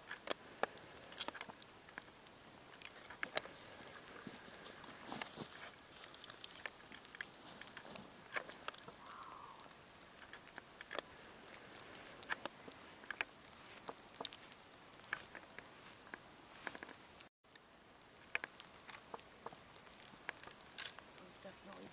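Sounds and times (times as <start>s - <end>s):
quiet hiss: 0.0s - 21.9s
small clicks and ticks: 0.0s - 21.9s
soft rustle: 0.0s - 21.9s.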